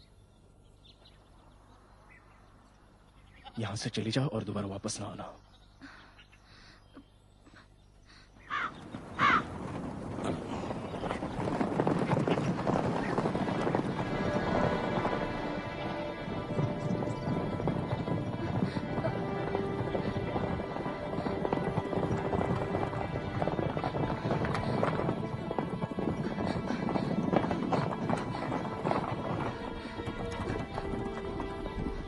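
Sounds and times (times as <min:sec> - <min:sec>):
horse hooves galloping: 0:08.5 - 0:32.0
film music: 0:12.8 - 0:32.0.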